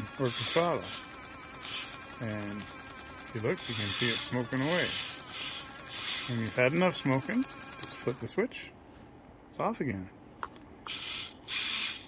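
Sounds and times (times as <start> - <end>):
servo motor whine: 0.0 - 8.4, 10.9 - 12.0.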